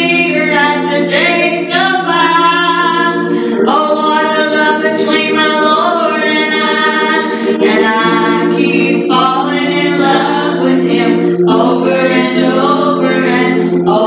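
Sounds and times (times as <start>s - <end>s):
sustained low accompaniment: 0.0s - 14.0s
woman singing through pa: 0.0s - 14.0s.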